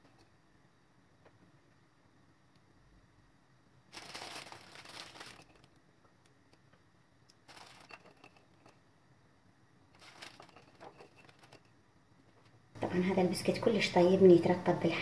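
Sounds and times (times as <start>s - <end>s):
plastic wrapper crinkling: 3.9s - 5.8s, 7.4s - 8.4s, 10.0s - 11.7s.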